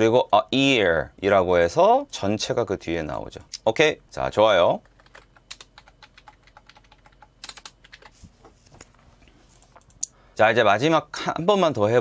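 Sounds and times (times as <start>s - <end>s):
keyboard typing clicks: 4.8s - 8.1s, 9.6s - 10.1s.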